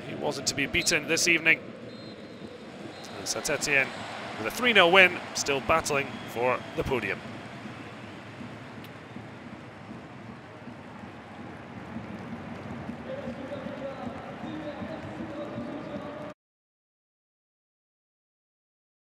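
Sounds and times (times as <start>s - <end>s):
stadium crowd voices: 0.0s - 16.4s.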